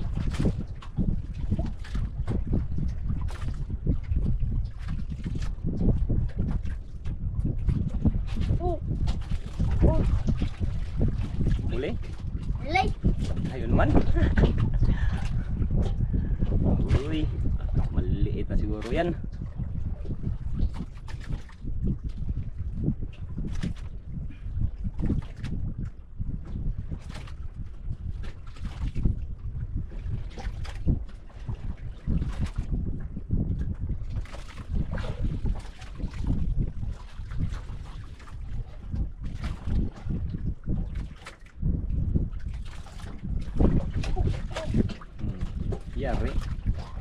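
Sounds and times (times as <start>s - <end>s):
water lapping against boat hull: 0.0s - 47.0s
wind and sea noise: 0.0s - 47.0s.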